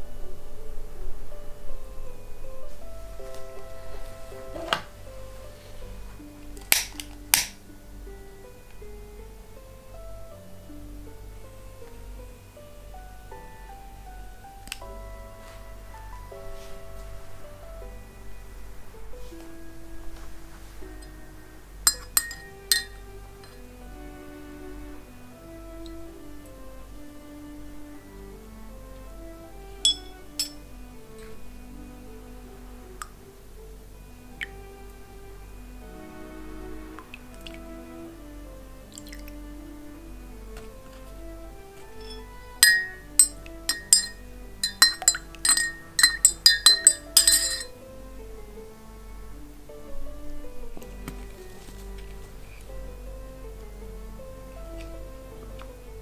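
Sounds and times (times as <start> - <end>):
metal spoon clinking in mug: 21.9 - 23.6, 29.9 - 30.6, 42.0 - 47.7.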